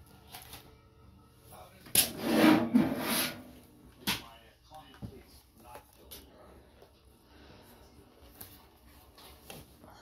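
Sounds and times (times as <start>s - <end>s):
computer case scraping and rubbing: 2.0s - 3.6s.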